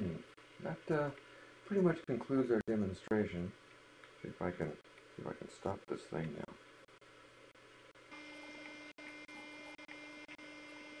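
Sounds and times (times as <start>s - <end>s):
electrical hum with high whine: 0.0s - 11.0s
low hiss: 0.0s - 11.0s.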